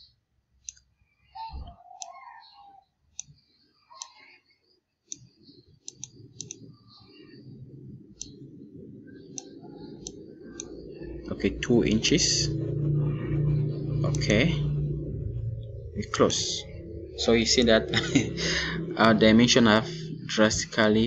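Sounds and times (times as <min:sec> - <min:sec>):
computer mouse clicking: 0:00.6 - 0:00.9, 0:05.1 - 0:06.6, 0:08.2 - 0:08.4, 0:09.2 - 0:10.8
low steady hum: 0:05.1 - 0:21.0.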